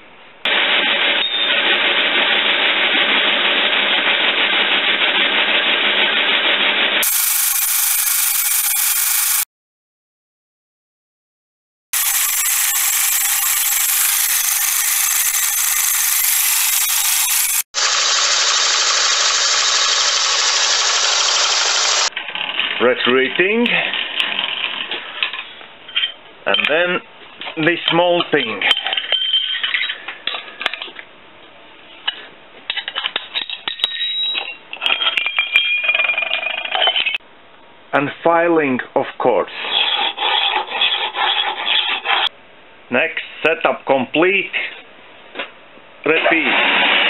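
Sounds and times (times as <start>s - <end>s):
milling machine cutting metal: 7.0s - 9.4s, 12.0s - 22.1s.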